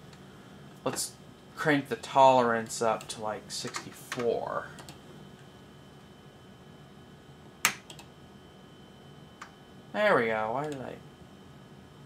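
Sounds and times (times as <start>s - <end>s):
faint computer hum: 0.0s - 12.0s.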